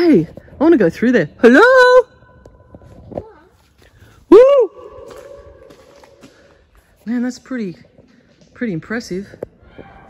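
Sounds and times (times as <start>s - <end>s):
shout echoing in a tunnel: 1.4s - 2.5s, 4.2s - 6.3s.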